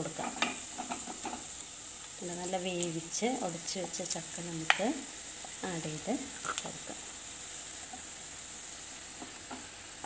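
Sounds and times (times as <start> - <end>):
food sizzling in frying pan: 0.0 - 10.0.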